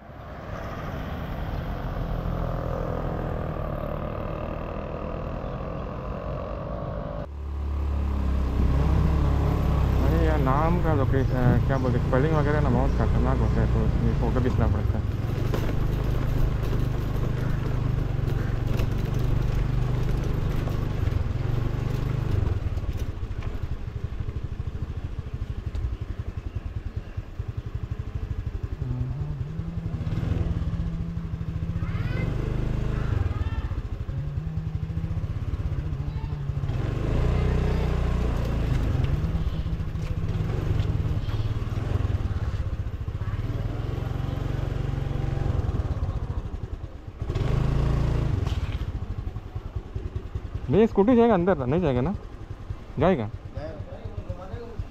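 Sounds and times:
motor scooter engine running: 2.4s - 54.9s.

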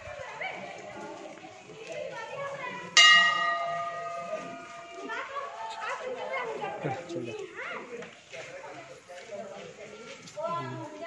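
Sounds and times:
temple bell ringing: 3.0s - 5.5s.

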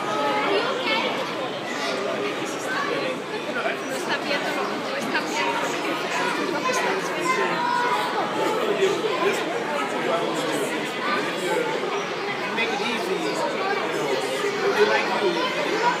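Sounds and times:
babble of children and adults: 0.0s - 16.0s.

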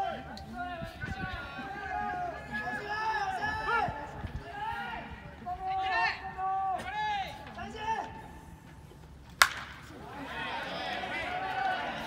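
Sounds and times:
baseball bat cracking ball: 9.4s - 9.9s.

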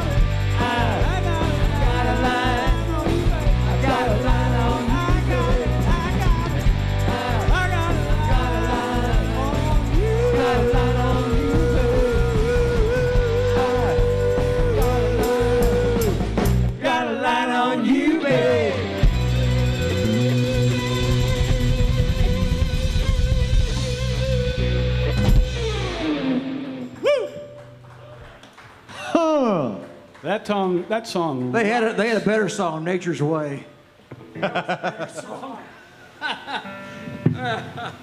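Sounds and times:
man's voice: 0.0s - 16.2s, 16.8s - 19.0s, 29.1s - 33.7s
live rock band playing: 0.0s - 16.8s, 18.2s - 27.8s.

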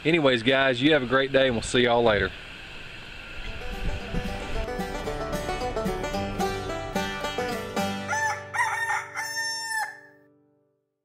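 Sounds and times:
background music: 3.6s - 10.2s
rooster crowing: 7.9s - 10.2s.

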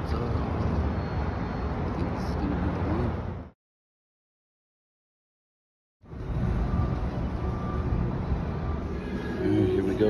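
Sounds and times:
traffic rumble: 0.0s - 3.6s, 6.0s - 10.0s.

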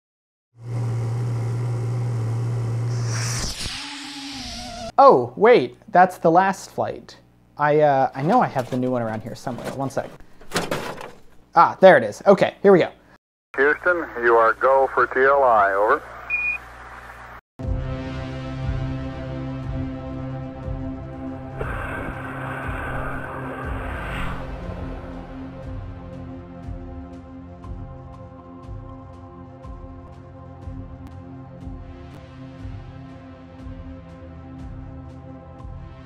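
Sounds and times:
rocket motor roaring: 0.6s - 5.0s, 21.4s - 25.2s
swish: 2.9s - 4.6s
faint radio hiss: 13.6s - 16.2s.

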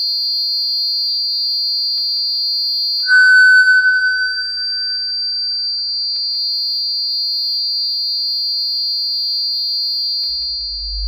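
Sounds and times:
low hum: 3.1s - 5.1s
high-pitched electronic whine: 3.1s - 5.3s.

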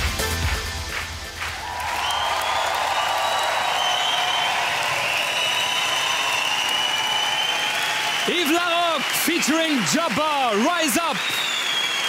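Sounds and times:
studio audience applauding: 0.0s - 12.0s.

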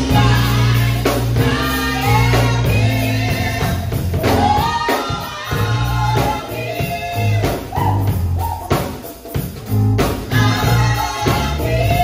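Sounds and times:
electric bass low notes: 0.0s - 4.7s, 5.5s - 8.7s, 9.7s - 12.0s
drum hits: 0.0s - 12.0s
keyboard: 0.0s - 12.0s
people singing gospel: 0.0s - 12.0s.

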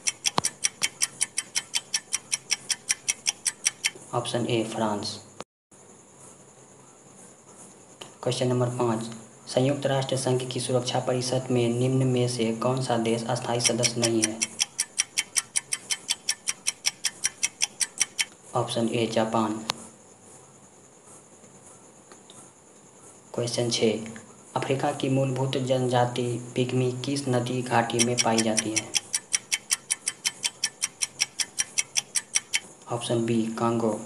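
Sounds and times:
rapid timer ticks: 0.0s - 4.0s, 13.4s - 18.4s, 27.8s - 32.8s.

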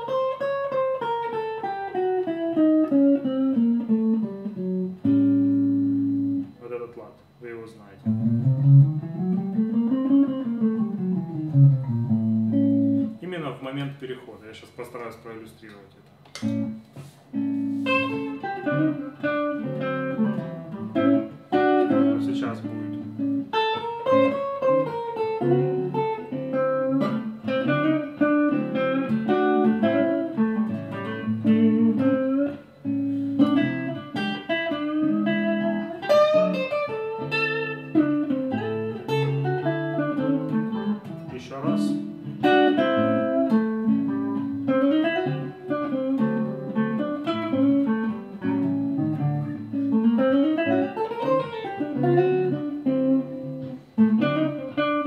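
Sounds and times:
electric guitar playing blues: 0.0s - 13.8s, 16.1s - 55.0s.

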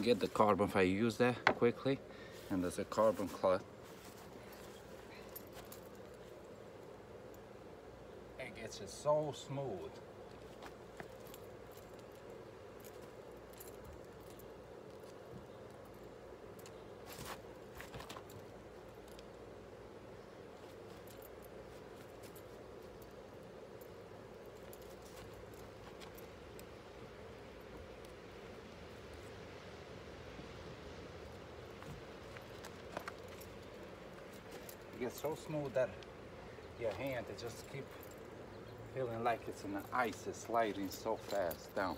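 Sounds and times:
faint background hum: 0.0s - 41.9s
keys jingling: 32.3s - 35.6s, 39.0s - 41.9s.

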